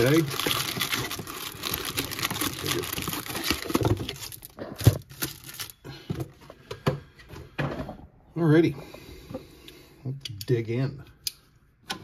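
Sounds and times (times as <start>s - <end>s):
wrapped card packs crinkling: 0.0s - 5.8s.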